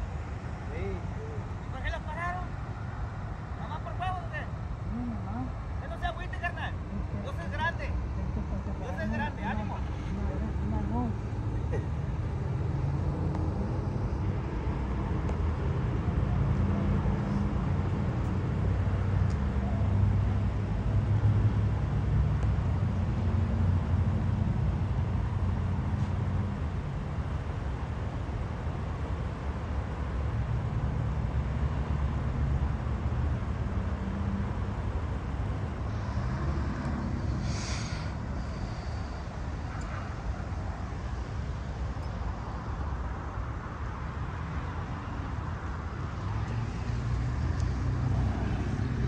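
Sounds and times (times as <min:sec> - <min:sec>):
vehicle engine rumbling: 0:00.0 - 0:49.0
faint voices: 0:03.6 - 0:11.5.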